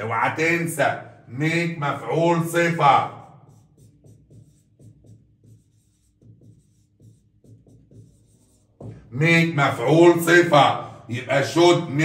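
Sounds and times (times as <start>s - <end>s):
marker writing on whiteboard: 1.4s - 10.9s.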